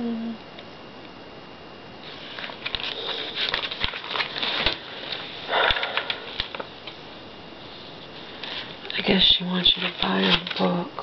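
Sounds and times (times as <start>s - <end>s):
magazine paper rustling: 2.1s - 7.1s, 7.8s - 10.8s.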